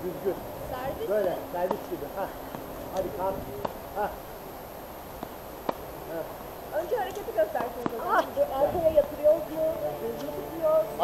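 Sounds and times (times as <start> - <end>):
voices talking: 0.0 - 11.0
tennis ball knock: 7.6 - 8.1.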